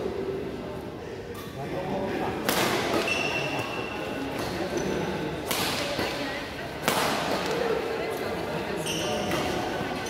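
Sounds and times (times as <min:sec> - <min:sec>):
background chatter: 0:00.0 - 0:10.0
racket striking shuttlecock: 0:02.4 - 0:04.6, 0:05.4 - 0:06.2, 0:06.8 - 0:07.6.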